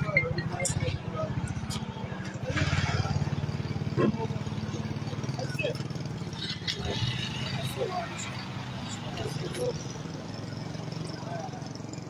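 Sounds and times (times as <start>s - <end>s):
people talking indistinctly: 0.0s - 11.9s.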